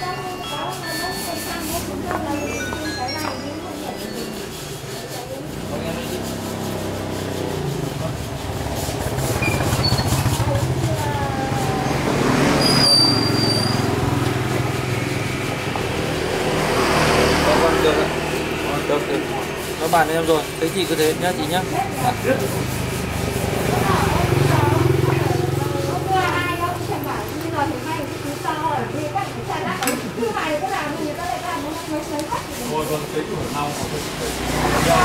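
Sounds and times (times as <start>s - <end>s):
faint voices: 0.0s - 35.0s
vehicles passing on road: 0.0s - 35.0s
brief high squeal: 9.4s - 10.2s, 12.5s - 14.0s.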